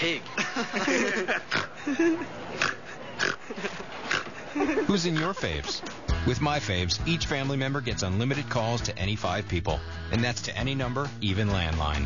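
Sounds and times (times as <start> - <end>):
laughter: 0.3 - 6.0.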